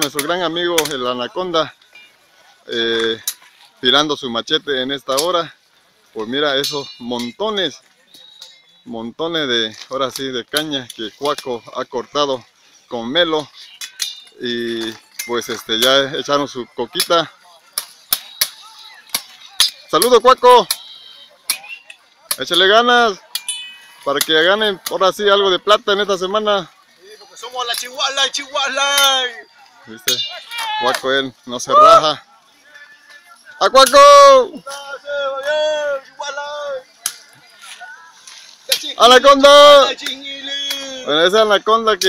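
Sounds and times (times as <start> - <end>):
machetes chopping sugarcane: 17.8 - 20.9.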